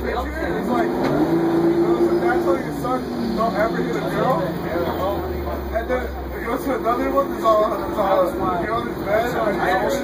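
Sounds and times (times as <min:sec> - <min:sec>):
bus engine drone: 0:00.0 - 0:10.0.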